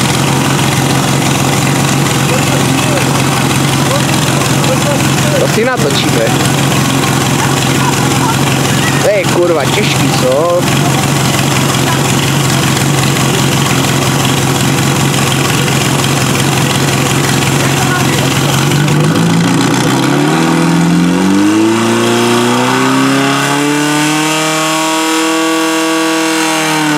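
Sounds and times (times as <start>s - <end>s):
pump engine running and revving: 0.0s - 26.9s.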